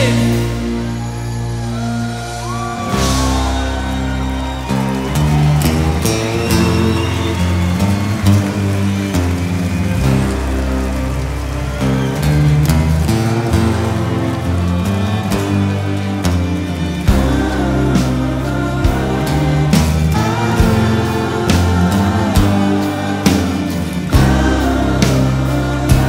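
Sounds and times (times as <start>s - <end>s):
acoustic guitars: 0.0s - 26.0s
bass notes: 0.0s - 26.0s
percussion: 0.0s - 26.0s.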